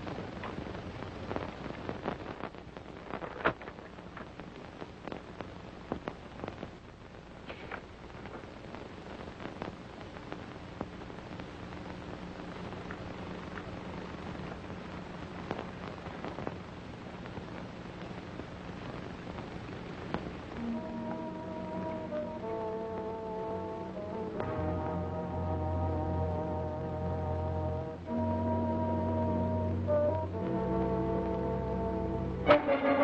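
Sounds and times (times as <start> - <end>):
soundtrack hiss and crackles: 0.0 - 33.0
orchestral film music: 20.6 - 33.0.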